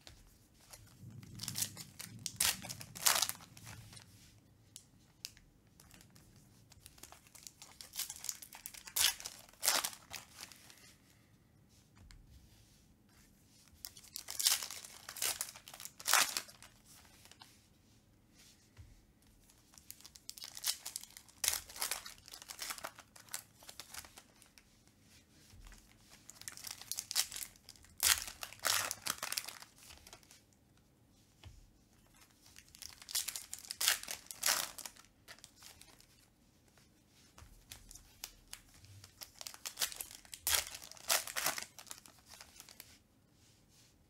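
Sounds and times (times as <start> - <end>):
foil wrappers tearing and crinkling: 1.4 - 3.9, 6.9 - 10.6, 13.9 - 16.8, 19.8 - 24.5, 26.3 - 30.3, 32.6 - 36.2, 38.2 - 42.8.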